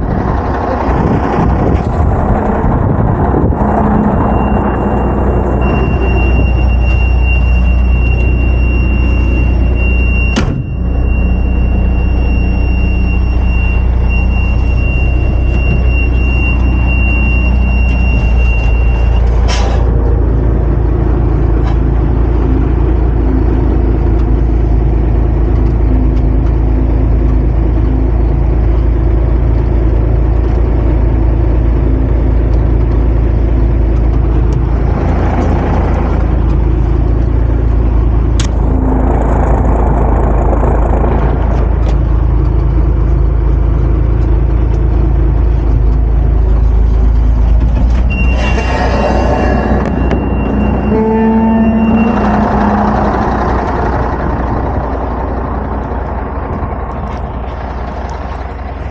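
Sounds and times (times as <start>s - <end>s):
diesel truck engine running: 0.0s - 58.9s.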